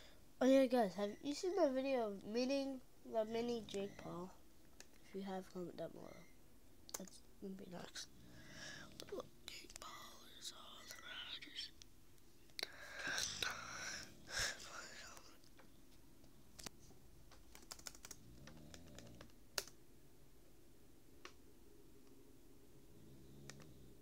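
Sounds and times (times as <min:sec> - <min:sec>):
person whispering: 0:07.0 - 0:11.8, 0:12.6 - 0:15.4.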